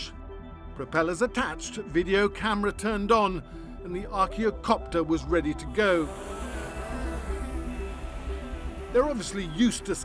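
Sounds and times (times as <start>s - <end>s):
drone propellers buzzing: 5.6s - 10.0s.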